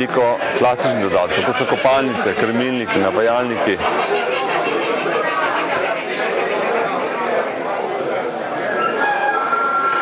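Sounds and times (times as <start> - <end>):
poultry clucking: 0.0 - 7.5
crowd chatter: 0.0 - 10.0
rooster crowing: 8.8 - 10.0.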